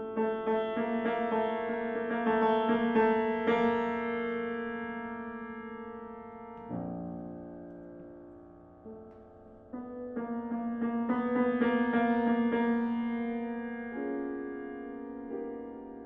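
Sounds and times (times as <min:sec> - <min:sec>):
piano chords ringing: 0:00.0 - 0:16.0.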